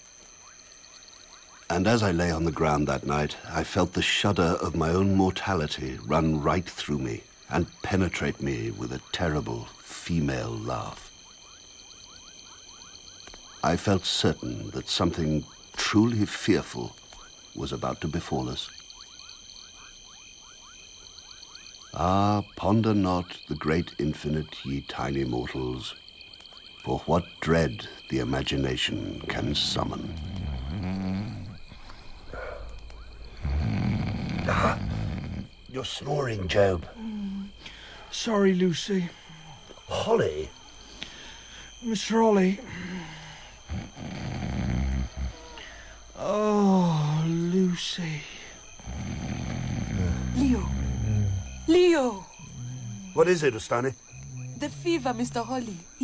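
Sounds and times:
frogs calling: 0:00.0 - 0:56.0
high insect trill: 0:00.0 - 0:56.0
man snoring: 0:29.0 - 0:32.7, 0:33.3 - 0:35.8, 0:42.6 - 0:47.4, 0:48.3 - 0:53.3
man snorting: 0:29.8 - 0:32.8, 0:33.4 - 0:35.6, 0:42.6 - 0:45.9, 0:48.8 - 0:51.7.

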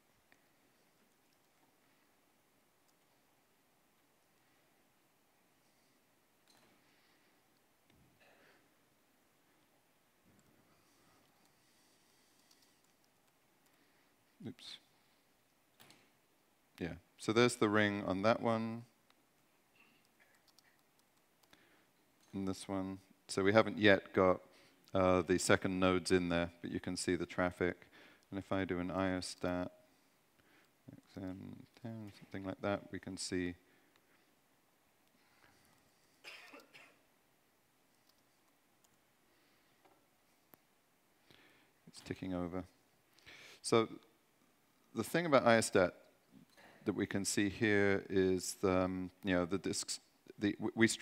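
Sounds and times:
laptop keys typing: 0:12.3 - 0:13.8, 0:20.0 - 0:21.6
man coughing: 0:36.2 - 0:37.0.

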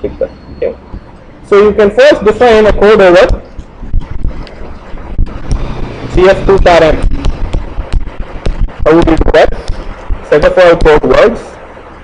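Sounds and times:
low rumbling on microphone: 0:02.4 - 0:10.5.

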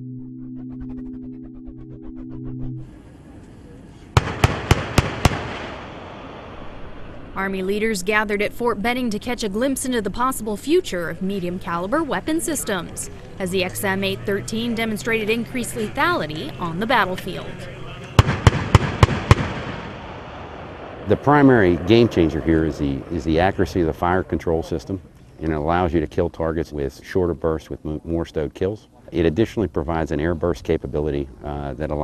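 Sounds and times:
rolling echo: 0:02.9 - 0:25.4
automatic cannon firing: 0:04.2 - 0:06.6, 0:18.2 - 0:20.9.

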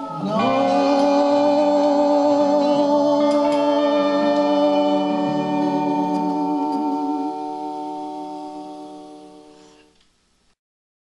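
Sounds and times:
sustained instrumental chord: 0:00.0 - 0:09.8.

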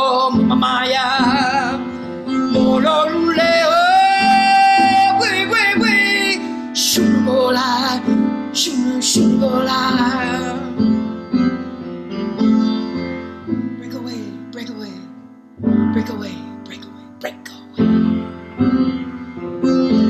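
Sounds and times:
woman singing with vibrato: 0:00.0 - 0:10.8
instrumental accompaniment: 0:00.0 - 0:20.0.

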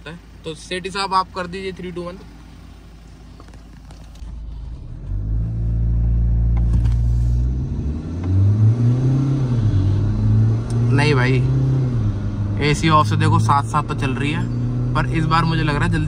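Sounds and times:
car engine accelerating hard: 0:04.0 - 0:16.0.

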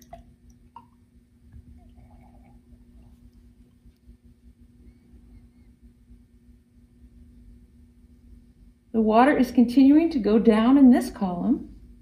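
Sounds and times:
faint small sounds: 0:00.0 - 0:06.3
steady low hum: 0:00.0 - 0:12.0.

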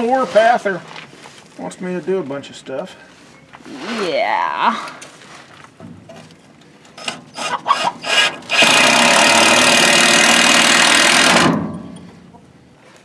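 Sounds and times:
cordless drill driving a screw: 0:07.0 - 0:11.6.

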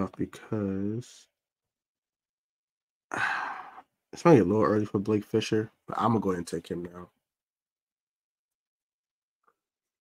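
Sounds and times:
man sighing: 0:03.1 - 0:03.9.

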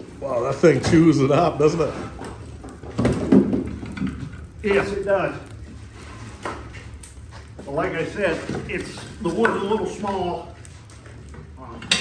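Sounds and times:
firewood knocking and scraping: 0:00.0 - 0:12.0.

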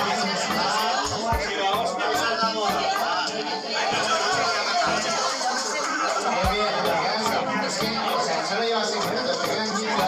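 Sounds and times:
background music with faint beat: 0:00.0 - 0:03.5, 0:04.3 - 0:10.0
people talking over one another: 0:00.0 - 0:10.0.

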